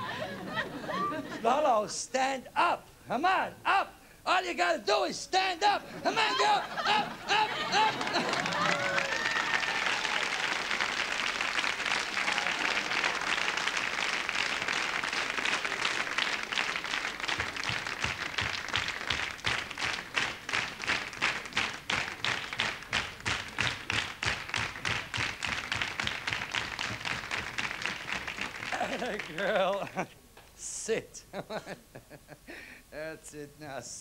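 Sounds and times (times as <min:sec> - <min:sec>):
studio audience applauding: 0:06.1 - 0:30.0
rhythmic clapping in unison: 0:06.7 - 0:30.1.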